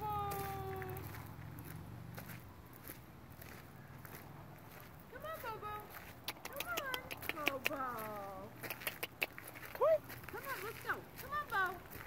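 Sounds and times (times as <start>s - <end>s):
person making wordless sounds: 5.2s - 10.1s.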